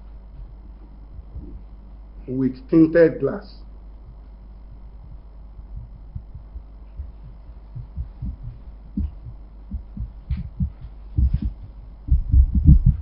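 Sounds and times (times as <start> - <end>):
low thumps and bumps: 0.3 - 1.8, 4.0 - 13.0.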